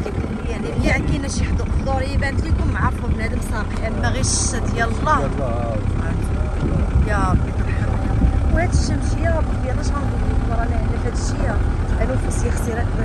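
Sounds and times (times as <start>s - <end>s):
car driving low rumble: 0.0s - 13.0s.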